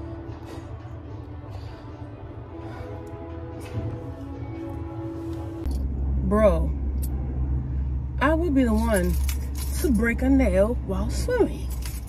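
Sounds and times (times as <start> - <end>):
car engine rumble inside cabin: 4.0 - 12.0.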